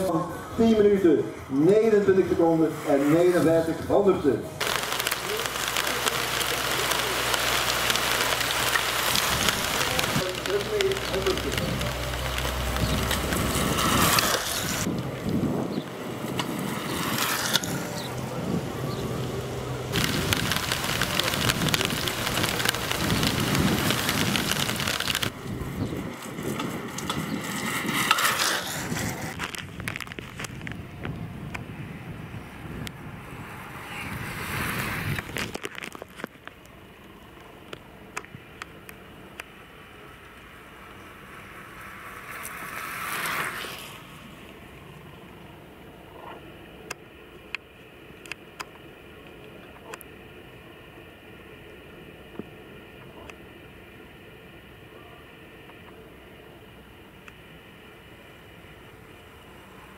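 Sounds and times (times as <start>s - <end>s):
indistinct voices: 0.0s - 14.9s, 17.9s - 25.7s
rain pattering on car roof: 4.6s - 15.5s, 19.4s - 25.4s, 29.2s - 31.6s, 35.2s - 39.5s.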